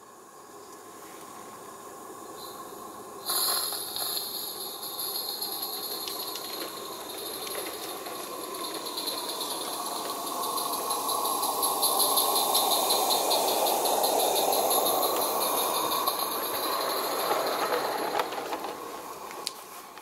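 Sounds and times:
steam exhaust beats: 0.0s - 20.0s
wheels rattling over rails: 2.3s - 20.0s.

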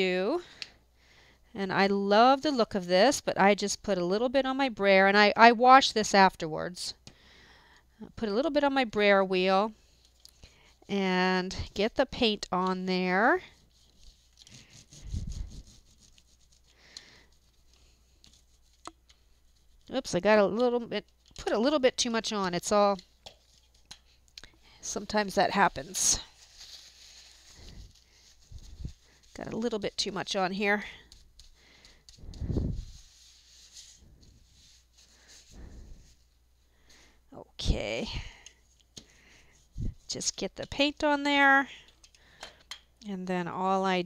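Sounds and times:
paint roller rubbing on cardboard: 13.5s - 16.7s, 24.9s - 36.2s.

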